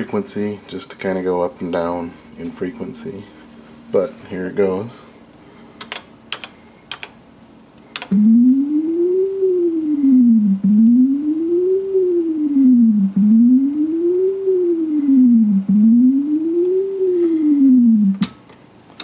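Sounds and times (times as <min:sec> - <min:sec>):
sliding electronic test tone: 0:08.1 - 0:18.2.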